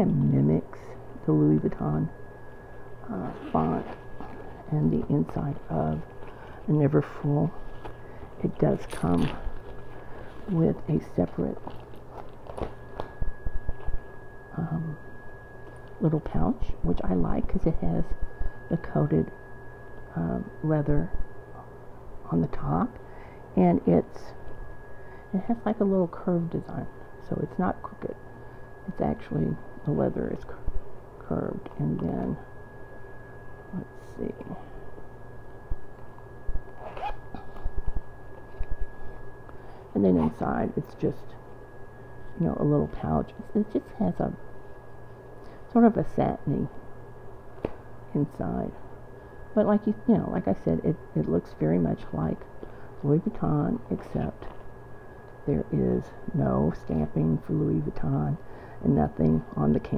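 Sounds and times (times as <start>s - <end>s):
pouch unzipping: 3.2s - 5.0s, 36.8s - 37.2s
bag handling noise: 3.2s - 14.0s.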